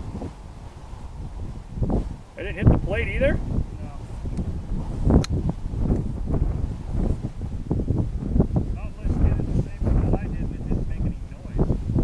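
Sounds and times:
wind buffeting microphone: 0.0 - 12.0
sharp click: 5.2 - 5.4.

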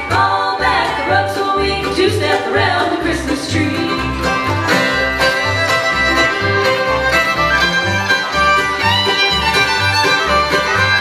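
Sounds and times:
acoustic guitars: 0.0 - 11.0
banjo: 0.0 - 11.0
fiddle: 0.0 - 11.0
mandolin: 0.0 - 11.0
resonator guitar: 0.0 - 11.0.

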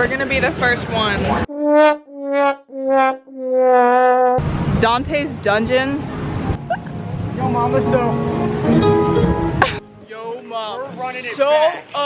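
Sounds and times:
outdoor background noise: 0.0 - 1.5, 4.4 - 12.0
sad trombone sound effect: 1.5 - 4.4.

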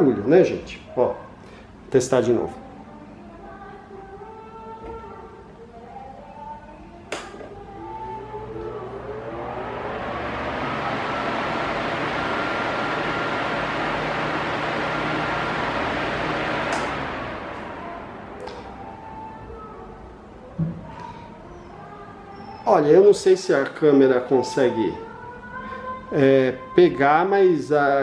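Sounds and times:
faint background music: 0.0 - 11.1, 17.4 - 28.0
fan air rushing: 7.1 - 26.2
faint motor whine: 7.5 - 26.8.

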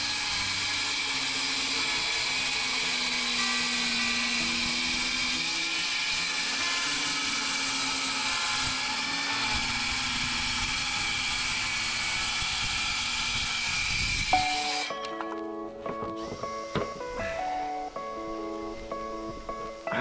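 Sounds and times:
circular saw cutting board: 0.0 - 15.0, 16.0 - 20.0.

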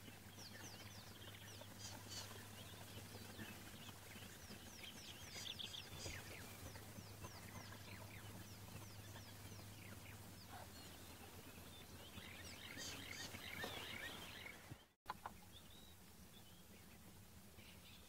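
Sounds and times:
low steady hum: 0.0 - 18.0
wild dogs twittering: 0.6 - 14.7.

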